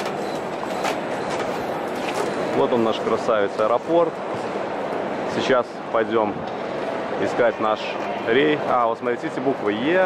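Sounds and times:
airport terminal hall noise: 0.0 - 10.0.

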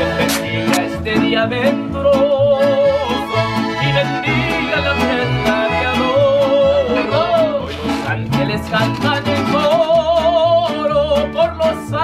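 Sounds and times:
accordion: 0.0 - 12.0
bass line: 0.0 - 12.0
strummed guitar: 0.0 - 12.0.

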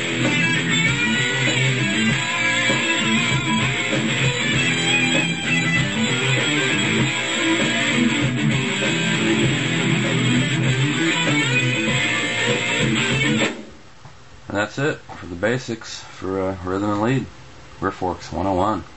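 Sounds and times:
heavy metal electric guitar riff: 0.0 - 13.7
programmed rock drum beat: 0.0 - 13.8.

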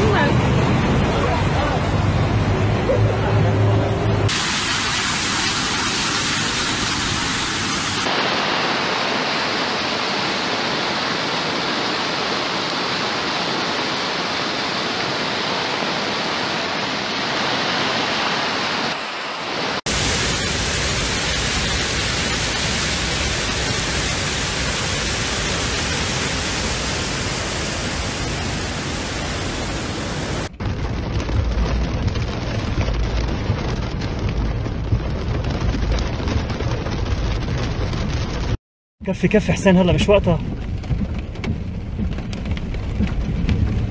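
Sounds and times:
heavy rain: 0.0 - 38.6, 39.4 - 43.9
rushing floodwater: 4.3 - 30.5
deep rumble: 19.9 - 38.6, 40.2 - 43.9.

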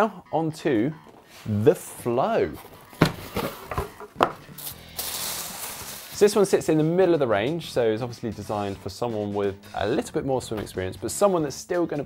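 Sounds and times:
cardboard box rustling: 2.4 - 4.3
plastic wrapping rustling: 2.5 - 6.5
box knocking on wooden table: 2.9 - 4.4.

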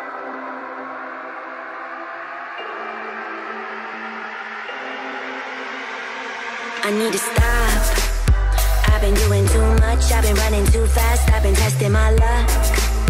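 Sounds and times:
sustained synth chords: 0.0 - 13.0.

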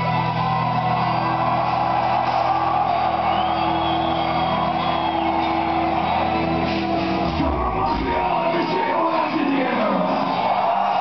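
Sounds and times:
live metal band: 6.2 - 10.1.

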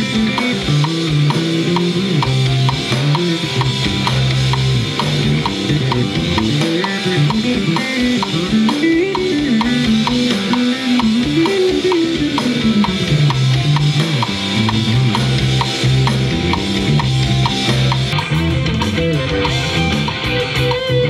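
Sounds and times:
drum kit: 0.0 - 21.0
electric bass line: 0.0 - 21.0
steady ticking pattern: 0.0 - 21.0.

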